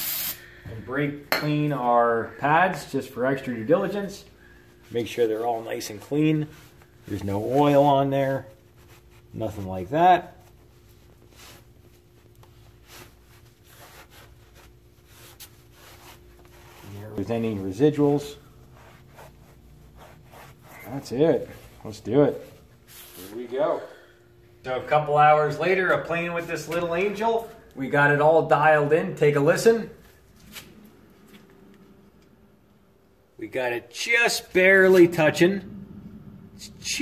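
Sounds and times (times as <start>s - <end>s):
faint steady hum: 0.0s - 37.0s
cloth rag rubbing: 3.2s - 23.4s.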